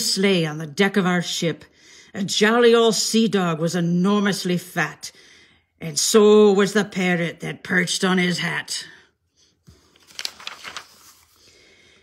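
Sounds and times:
paper page turning: 9.6s - 11.6s.

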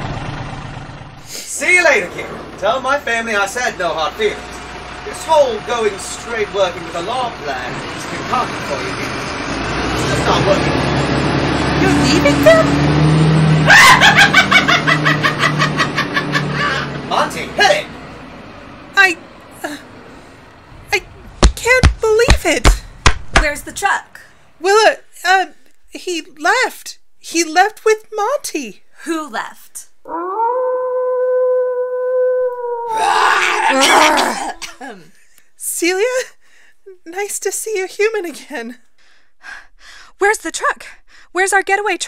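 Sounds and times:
truck engine humming: 0.0s - 26.6s
man laughing rapidly: 13.7s - 16.9s, 33.6s - 34.8s
person coughing: 33.8s - 34.8s.

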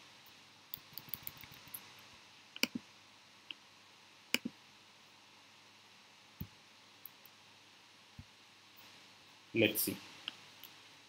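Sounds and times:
mouse clicks: 0.7s - 1.8s, 2.6s - 2.8s, 4.3s - 4.6s.

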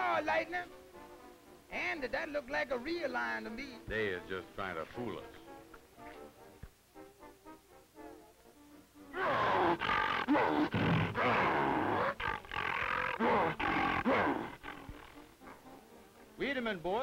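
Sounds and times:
background music: 0.0s - 17.0s
cartoon lion roaring: 9.1s - 15.7s.

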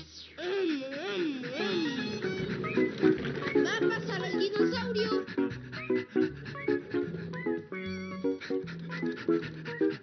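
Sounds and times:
cartoon dog panting: 0.0s - 10.0s
light cartoon music: 0.0s - 10.0s.

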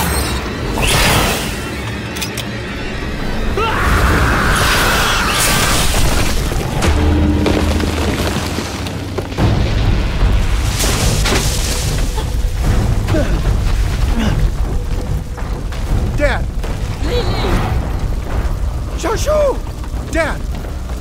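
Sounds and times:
dramatic music: 0.0s - 21.0s
heavy booms and crashes: 3.9s - 21.0s.

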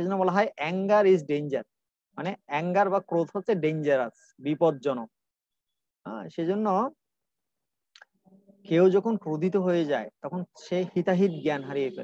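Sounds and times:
man speaking: 0.0s - 5.2s, 6.1s - 7.0s, 8.7s - 12.0s.

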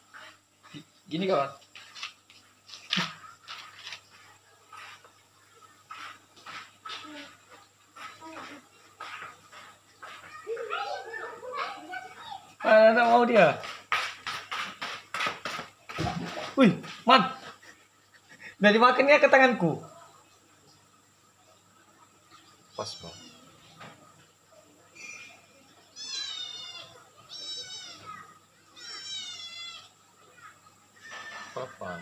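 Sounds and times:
fish splashing and knocking: 13.6s - 17.1s
cat meowing: 22.9s - 23.6s, 26.0s - 28.2s, 28.8s - 29.9s.

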